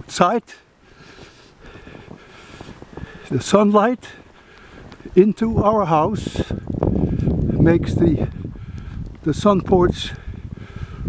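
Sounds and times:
wind noise on microphone: 0:00.8 - 0:11.0
footsteps in snow: 0:00.9 - 0:06.2.

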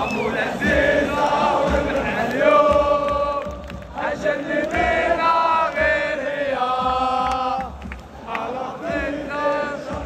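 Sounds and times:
crowd chanting in unison: 0:00.0 - 0:10.0.

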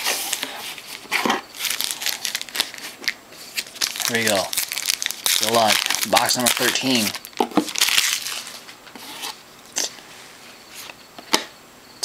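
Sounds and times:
card pack wrapper crinkling: 0:00.0 - 0:09.3.

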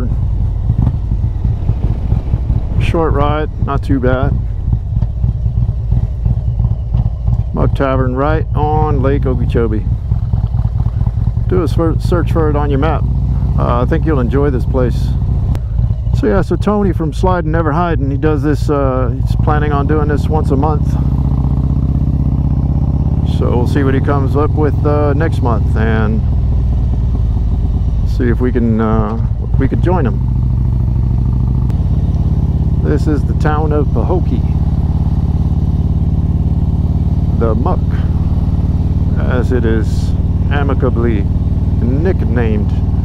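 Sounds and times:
wind buffeting on microphone: 0:00.0 - 0:07.5
motorcycle engine rumbling: 0:00.0 - 0:43.0.

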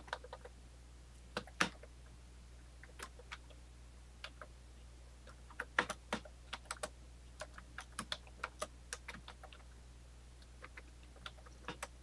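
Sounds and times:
typing on computer keyboard: 0:00.0 - 0:00.5, 0:02.8 - 0:03.5, 0:05.3 - 0:09.6, 0:10.6 - 0:12.0.

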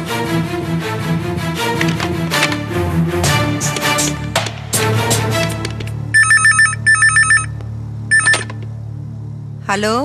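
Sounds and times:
telephone ringing electronic trill: 0:06.2 - 0:08.6
low musical drone: 0:07.0 - 0:10.0.

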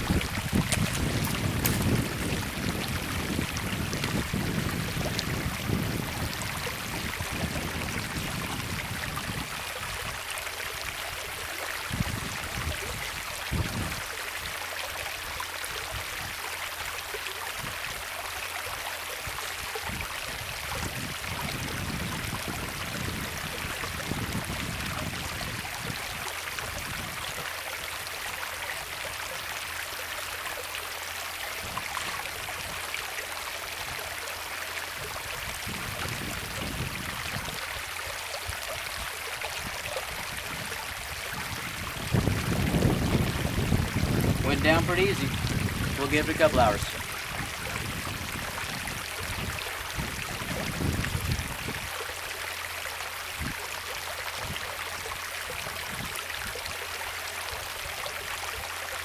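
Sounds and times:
creek water over rocks: 0:00.0 - 0:59.0.

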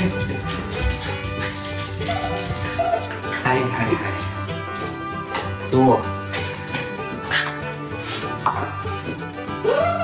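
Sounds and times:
background music: 0:00.0 - 0:10.0
small dog yipping: 0:01.5 - 0:03.4.

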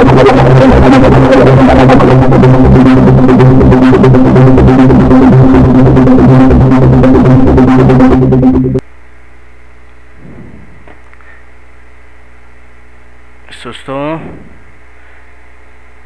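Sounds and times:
buzzy arpeggiated synthesizer: 0:00.0 - 0:08.8
low steady hum: 0:00.0 - 0:16.0.

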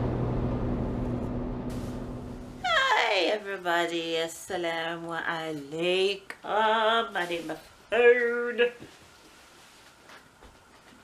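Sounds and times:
engine and road rumble: 0:00.0 - 0:02.6
faint held hum: 0:00.0 - 0:11.0.

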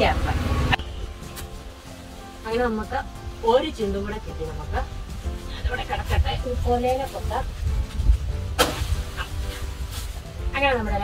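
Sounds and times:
machete chopping into stalk: 0:08.6 - 0:09.7.

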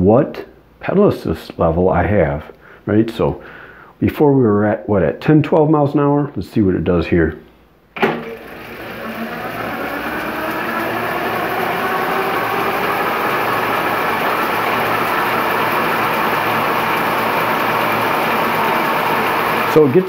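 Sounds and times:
electric bike motor whining: 0:08.2 - 0:20.0.

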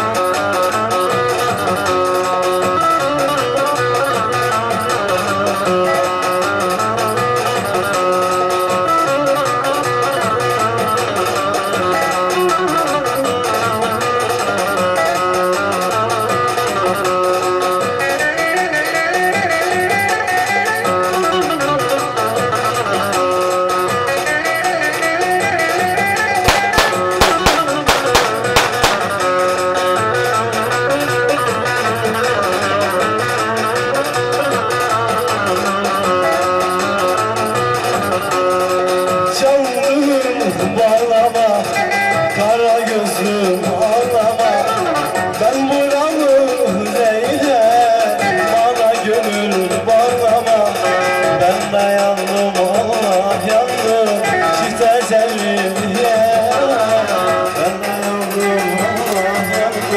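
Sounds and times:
sharp knocks: 0:26.5 - 0:29.1.

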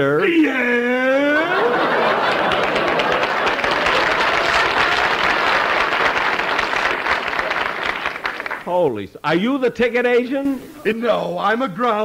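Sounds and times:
audience laughing: 0:01.0 - 0:08.2
audience applauding: 0:01.5 - 0:08.8.

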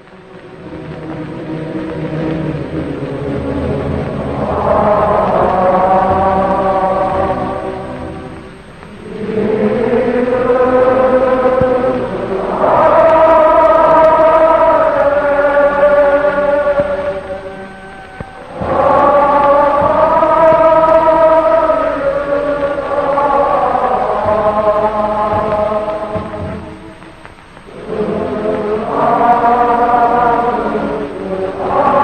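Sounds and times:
choral chanting: 0:00.0 - 0:32.0.

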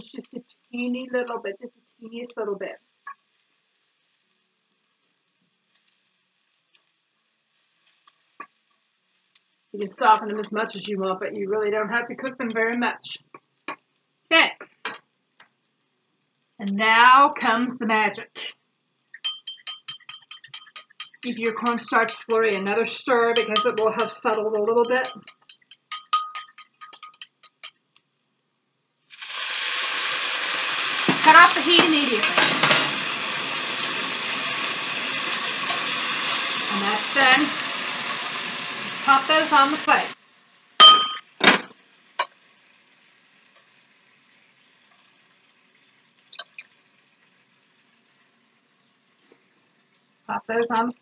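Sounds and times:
sizzling in frying pan: 0:00.0 - 0:14.3, 0:15.0 - 0:51.0
metal tongs clicking: 0:19.2 - 0:27.7
utensil clinking against bowl: 0:19.2 - 0:27.7.

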